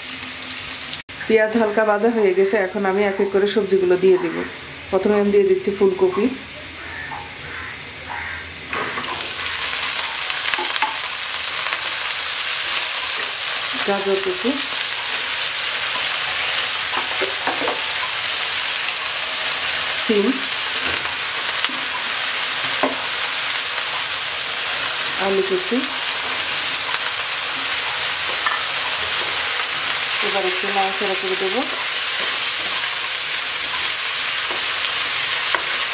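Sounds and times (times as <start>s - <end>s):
vegetables sizzling in hot oil: 0.0s - 35.9s.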